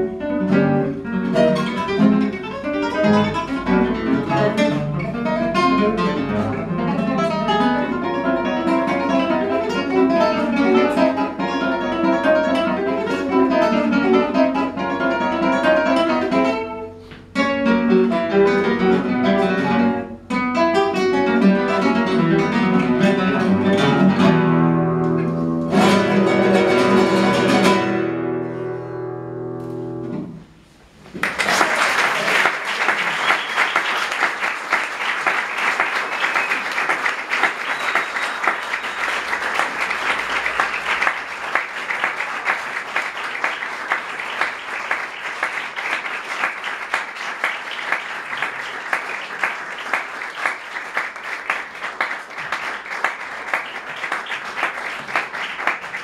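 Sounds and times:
classical guitars playing: 0.0s - 31.0s
audience applause: 31.1s - 56.0s.

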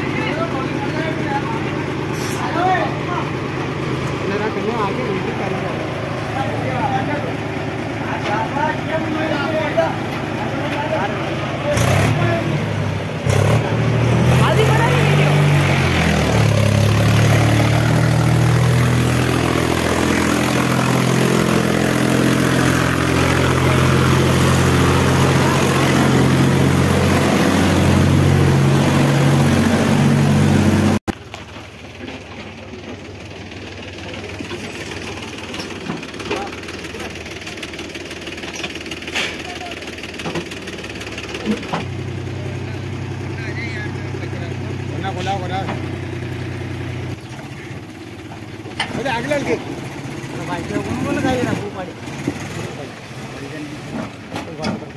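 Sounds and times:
tractor diesel engine under load: 0.0s - 54.9s.

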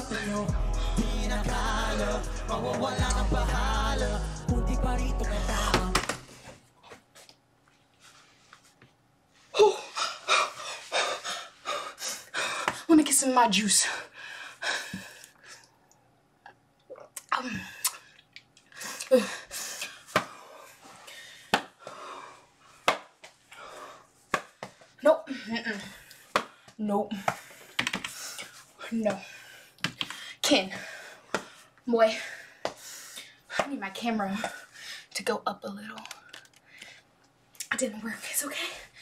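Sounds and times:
music: 0.0s - 6.3s
person moving about: 5.7s - 9.6s.

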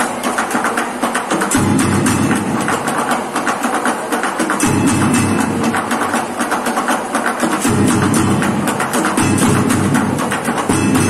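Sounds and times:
deep low percussion layer: 7.6s - 11.0s.

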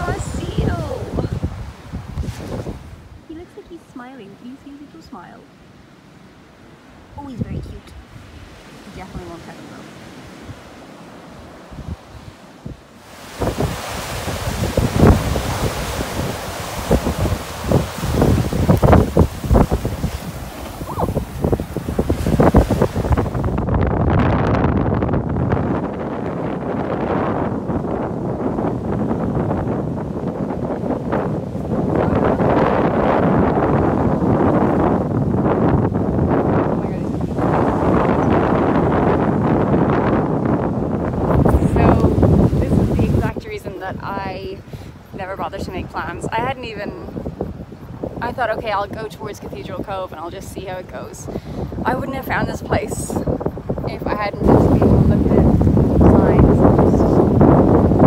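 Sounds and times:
surf breaking on beach: 0.0s - 3.4s, 6.7s - 58.0s
wind buffeting microphone: 0.0s - 58.0s.

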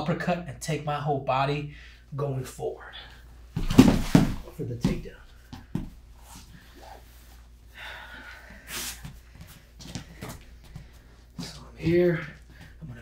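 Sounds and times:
soft thumps and rustles on mat: 3.6s - 6.0s.

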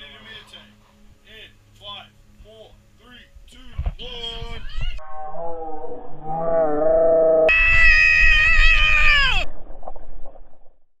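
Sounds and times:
high-pitched scream: 6.2s - 9.5s.

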